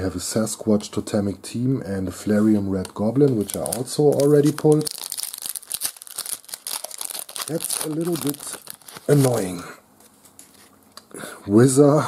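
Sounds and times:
foil wrapper crinkling and tearing: 3.2 - 9.6.

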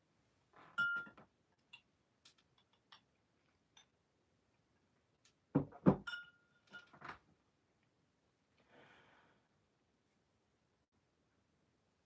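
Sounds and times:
drinking glass clinking: 0.8 - 1.9, 6.0 - 6.9.

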